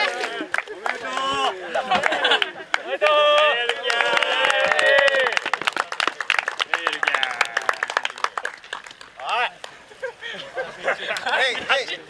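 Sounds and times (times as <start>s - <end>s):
men clapping: 0.0s - 9.8s, 11.1s - 11.4s.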